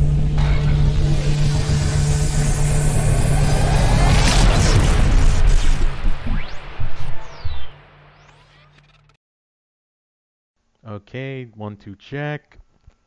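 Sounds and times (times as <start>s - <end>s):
low rumble: 0.0s - 8.1s
rising whoosh: 0.0s - 8.3s.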